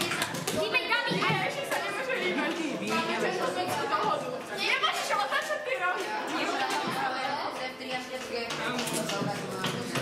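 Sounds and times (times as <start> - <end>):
young people chattering: 0.0 - 10.0.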